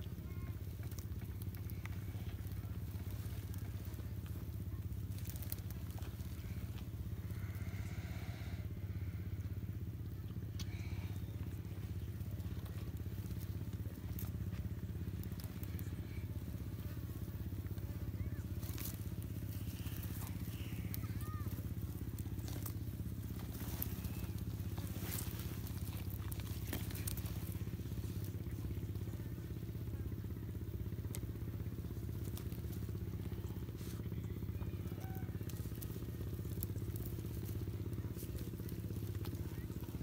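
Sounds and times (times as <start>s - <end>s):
animals crunching and tearing meat: 0.0s - 40.0s
steady low hum: 0.0s - 40.0s.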